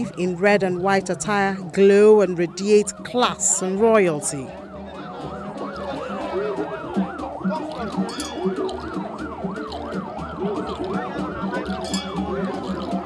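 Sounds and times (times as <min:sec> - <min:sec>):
electronic siren yelping: 0:00.0 - 0:13.0
low pulsing beat: 0:00.0 - 0:13.0.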